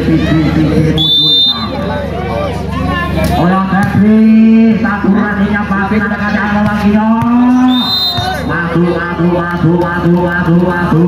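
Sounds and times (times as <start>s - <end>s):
short high whistle tone: 1.0s - 1.8s, 7.7s - 8.3s
man speaking: 3.4s - 11.0s.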